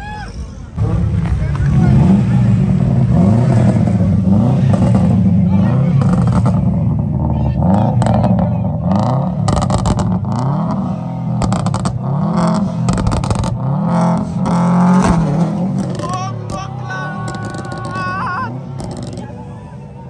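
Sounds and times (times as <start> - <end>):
exhaust cracks: 0.7 - 19.6
car engine revving: 0.7 - 20.0
tires spinning in a burnout: 0.8 - 20.0.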